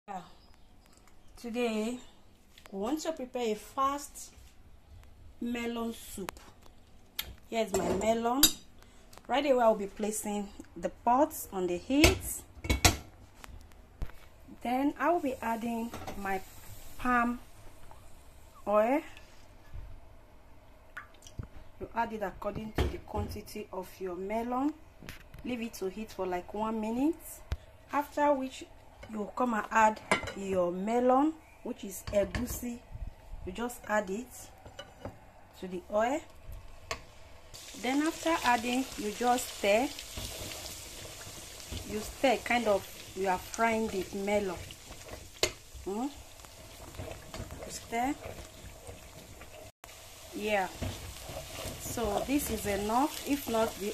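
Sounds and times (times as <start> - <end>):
oil sizzling in a pot: 14.9 - 18.6, 36.6 - 53.9.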